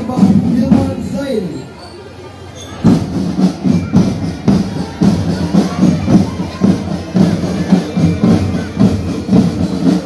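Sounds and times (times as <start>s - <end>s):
marching drum band: 0.0s - 1.6s, 2.8s - 10.0s.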